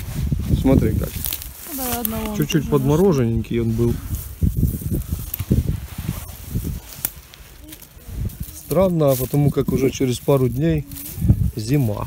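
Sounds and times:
rustling on dry pine needles: 0.0s - 12.0s.

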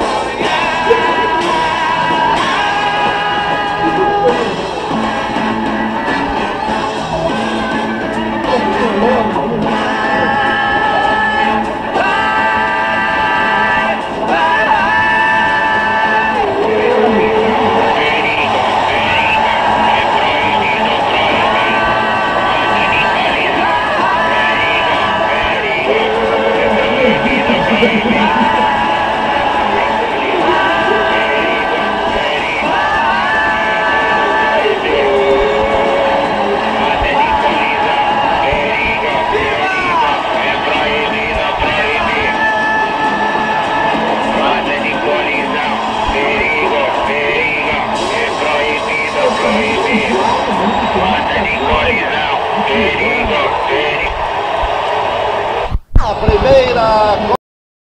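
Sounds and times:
rock band and orchestra playing: 0.0s - 47.0s, 47.7s - 53.7s
group singing: 0.0s - 55.4s.

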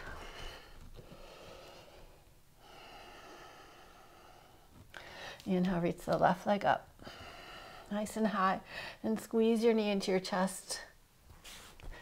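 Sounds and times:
faint human breathing: 0.0s - 5.5s, 6.9s - 8.0s, 8.6s - 9.0s.

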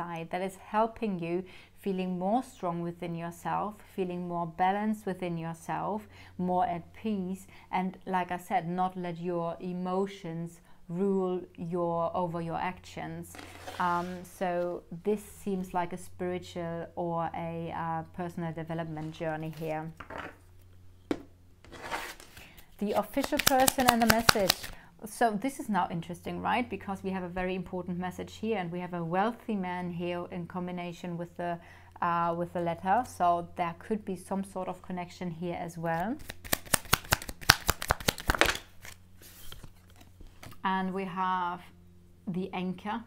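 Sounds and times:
cards being shuffled: 13.3s - 14.2s, 19.0s - 19.8s, 21.6s - 24.8s, 36.2s - 40.6s
cards sliding on wooden table: 13.3s - 14.3s, 21.6s - 22.6s, 38.2s - 40.6s
card tapping on table: 21.1s - 21.3s.

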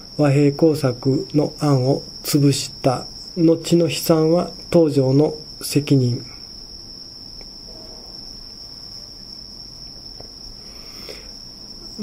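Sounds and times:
cricket trilling: 0.0s - 12.0s
faint low hum: 0.0s - 12.0s.

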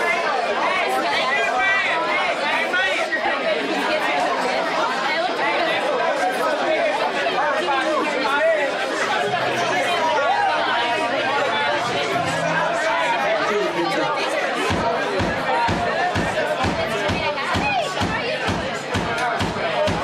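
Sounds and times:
crowd talking and shouting: 0.0s - 20.0s.

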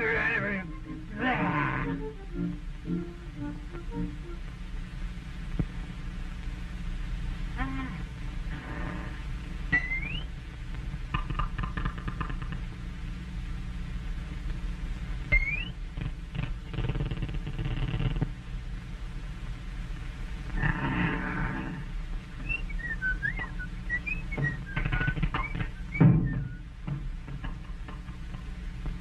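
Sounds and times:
low hum: 0.0s - 29.0s
click with rising whistle: 9.7s - 10.3s, 22.4s - 26.6s
squeaky clicks: 22.4s - 26.6s.

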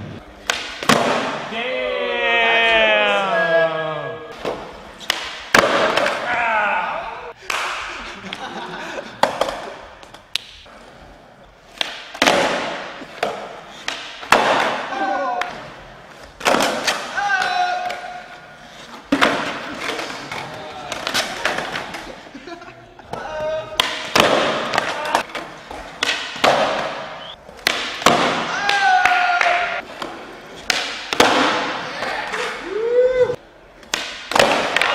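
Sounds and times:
skateboard pops and landings: 0.4s - 1.4s, 4.4s - 6.3s, 11.8s - 15.6s, 23.8s - 31.8s, 33.8s - 34.9s
people shouting: 1.5s - 4.3s, 6.0s - 7.4s, 14.7s - 15.6s, 17.0s - 18.3s, 28.3s - 29.8s, 31.6s - 33.4s.

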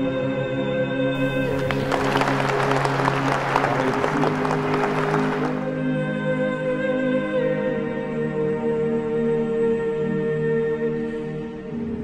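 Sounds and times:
background music: 1.2s - 5.8s
crowd applauding: 1.2s - 5.8s.

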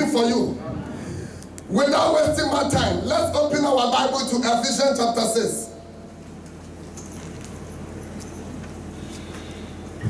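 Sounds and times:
low sound system hum: 0.0s - 10.0s.

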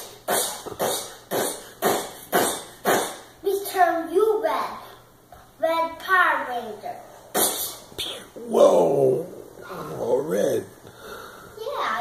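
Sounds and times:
rhythmic panting breaths: 0.0s - 3.4s, 10.8s - 11.7s.

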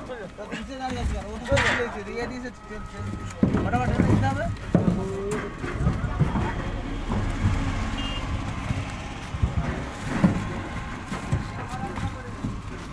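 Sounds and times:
coconuts knocking onto pile: 0.0s - 12.9s.

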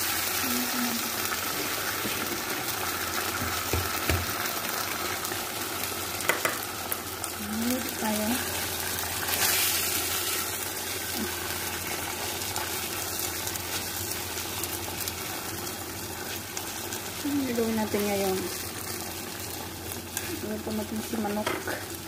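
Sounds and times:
chicken sizzling in a pan: 0.0s - 22.0s.

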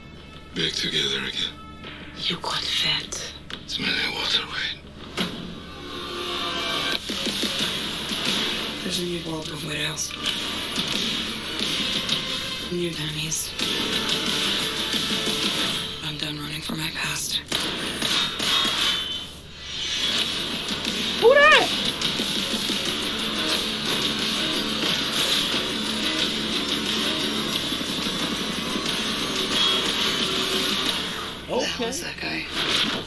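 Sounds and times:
movie trailer music: 4.8s - 31.5s.

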